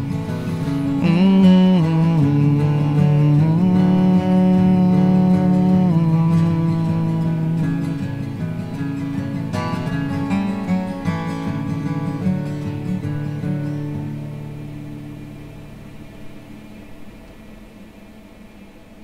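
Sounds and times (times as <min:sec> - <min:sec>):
acoustic guitar playing: 0:00.0 - 0:18.6.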